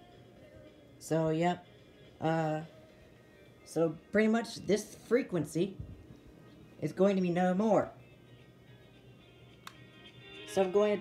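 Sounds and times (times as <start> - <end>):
faint music from radio speaker: 0.0 - 11.0.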